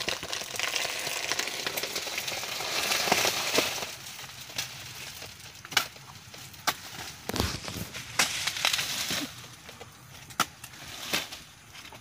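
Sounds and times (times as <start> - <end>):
dry leaves crackling and rustling: 0.0 - 12.0.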